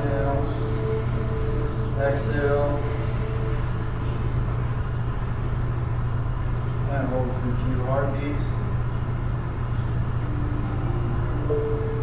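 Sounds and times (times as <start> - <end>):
steady low hum: 0.0 - 12.0
faint held tones: 10.1 - 12.0.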